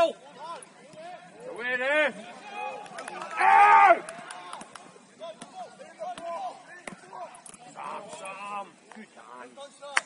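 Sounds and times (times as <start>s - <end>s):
distant shouts of footballers: 0.0s - 7.2s.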